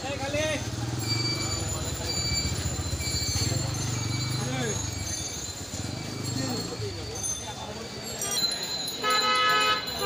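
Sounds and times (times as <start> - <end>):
vehicle engine running: 0.0 - 7.0.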